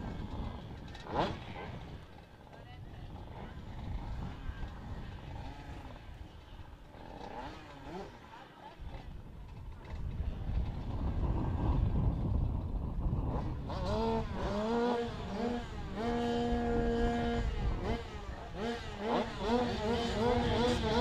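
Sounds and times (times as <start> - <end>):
two-stroke engines revving: 0.0 - 21.0.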